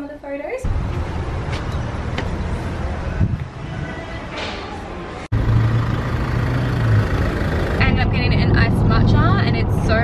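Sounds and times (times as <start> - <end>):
woman speaking: 0.0 - 0.7, 7.8 - 10.0.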